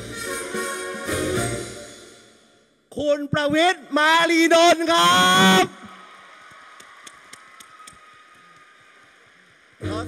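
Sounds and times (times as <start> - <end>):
man's drawn-out announcing call: 2.9 - 5.8.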